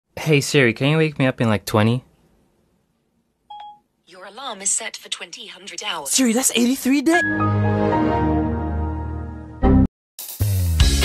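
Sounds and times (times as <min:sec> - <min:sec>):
short electronic phone beep: 0:03.5 - 0:03.8.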